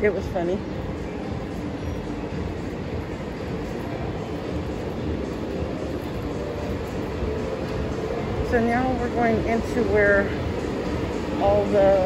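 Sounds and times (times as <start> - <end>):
low rumbling din of casino hall: 0.0 - 12.0.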